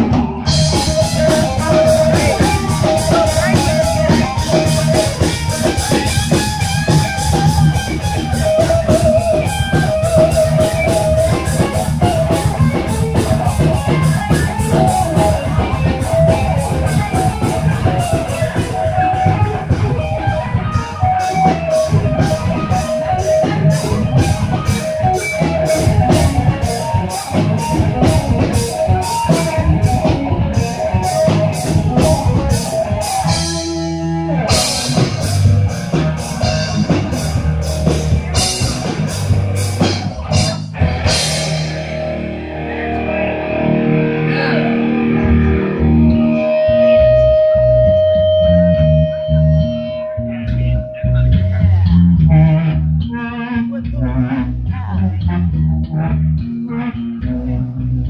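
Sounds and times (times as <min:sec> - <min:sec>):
drums fast beat: 0:00.0 - 0:42.4
metal band playing: 0:00.0 - 0:58.0.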